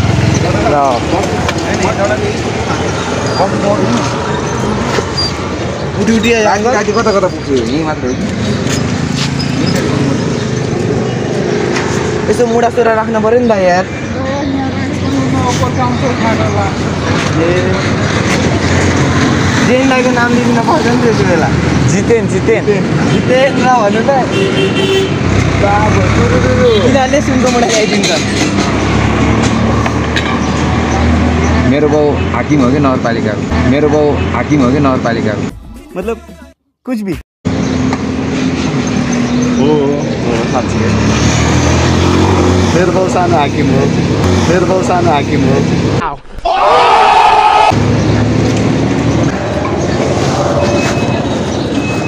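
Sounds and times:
street traffic rumble: 0.0 - 52.0
people talking: 31.7 - 37.2, 42.7 - 46.6.

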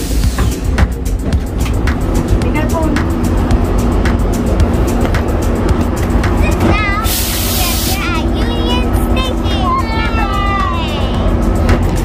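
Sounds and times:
background music: 0.0 - 12.0
train rumbling at platform: 0.0 - 12.0.

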